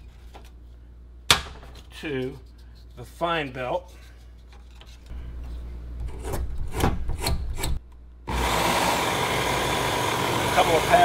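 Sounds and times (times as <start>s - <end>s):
abrasive belt running: 8.3s - 11.0s
electric motor switching on: 8.3s - 11.0s.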